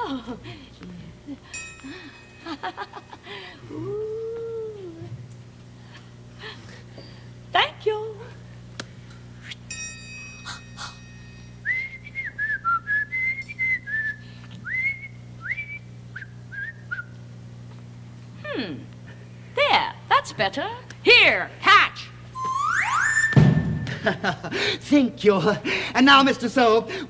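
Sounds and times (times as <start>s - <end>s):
ringing tone: 1.5s - 3.2s, 9.7s - 11.6s, 22.4s - 23.4s
person whistling a tune: 11.6s - 17.1s, 22.4s - 23.5s
slide whistle gliding up: 22.4s - 23.6s
dull thump: 23.3s - 24.0s.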